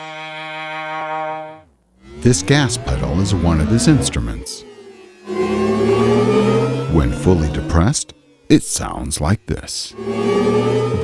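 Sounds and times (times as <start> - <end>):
synthesized cello-like tone: 0.0 - 11.0.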